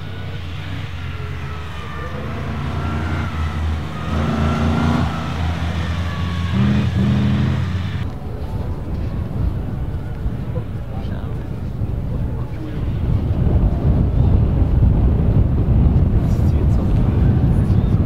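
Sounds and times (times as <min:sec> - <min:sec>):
car engine revving: 0:00.0 - 0:08.1.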